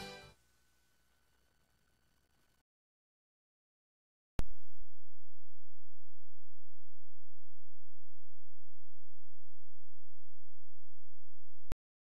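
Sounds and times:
faint high whine: 4.4s - 11.8s
low electronic hum: 4.4s - 11.8s.

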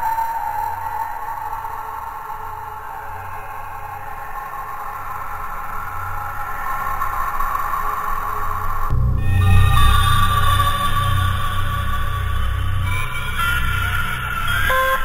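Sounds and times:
low hum: 8.2s - 15.0s
synthesized drone tones: 8.8s - 15.0s.

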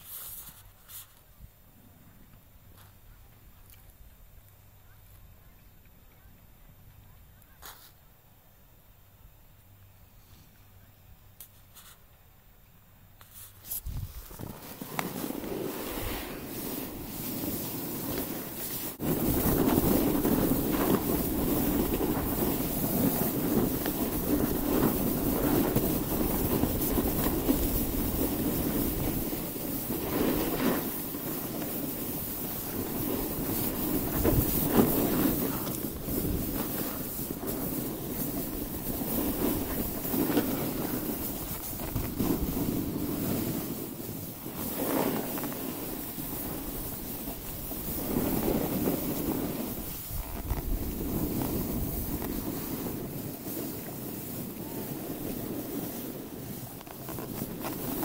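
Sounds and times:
skis sliding over packed snow: 0.0s - 3.3s, 7.6s - 8.0s, 11.4s - 12.1s, 13.2s - 58.0s
wind rushing over microphone: 13.7s - 58.0s.

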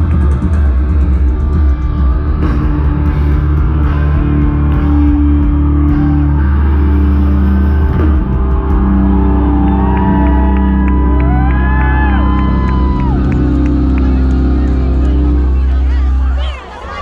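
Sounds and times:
live rock band playing loud: 0.0s - 15.7s.

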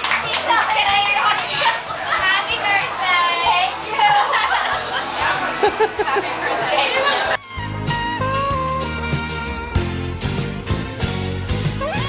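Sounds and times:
crowd talking and calling out: 0.0s - 7.6s
high-pitched voices shouting: 11.8s - 12.0s.

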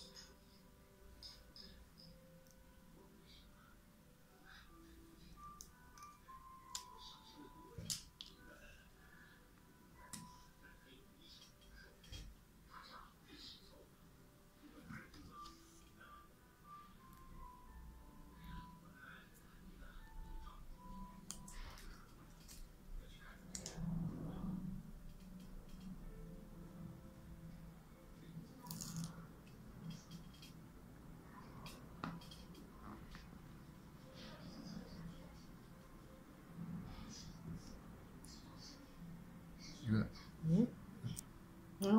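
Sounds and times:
faint music: 0.0s - 41.9s
low steady hum: 0.0s - 41.9s.

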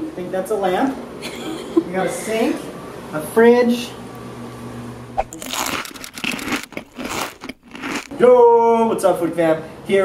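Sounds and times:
rustling and crinkling: 5.3s - 8.2s.

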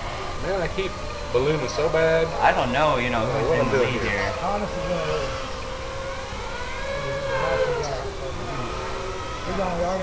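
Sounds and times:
quadcopter motors whining: 0.0s - 10.0s.

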